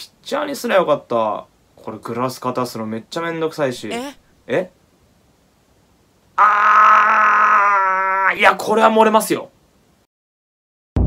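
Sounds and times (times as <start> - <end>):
man crying out: 3.8 - 4.2.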